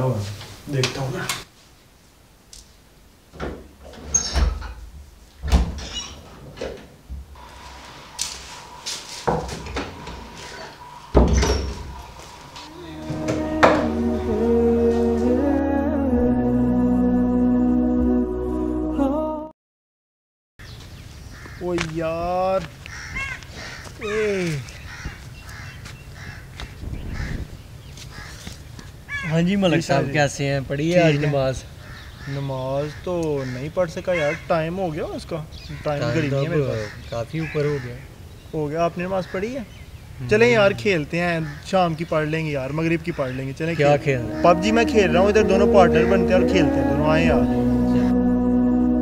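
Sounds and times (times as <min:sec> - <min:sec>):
door squeak: 0:03.9 - 0:04.8, 0:05.4 - 0:06.3, 0:09.2 - 0:12.2
door thump: 0:05.4 - 0:05.9, 0:11.1 - 0:12.0, 0:13.1 - 0:14.0.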